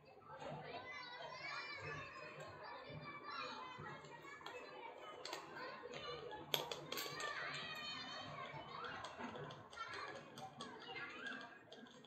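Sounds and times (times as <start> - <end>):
children playing and calling out: 0.0 - 12.0.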